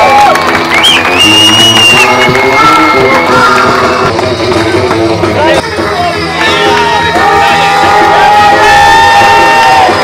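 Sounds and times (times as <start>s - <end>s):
background music: 0.0s - 10.0s
crowd cheering: 0.0s - 10.0s
long drawn-out shout: 6.4s - 10.0s.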